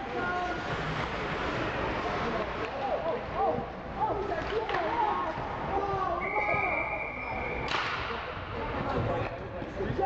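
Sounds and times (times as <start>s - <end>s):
ice rink background noise: 0.0s - 10.0s
referee's whistle blowing: 6.2s - 7.7s
sharp crack with echo: 7.7s - 8.2s.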